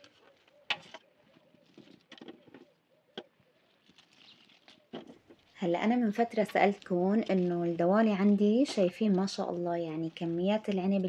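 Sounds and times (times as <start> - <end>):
soft rustling: 0.0 - 11.0.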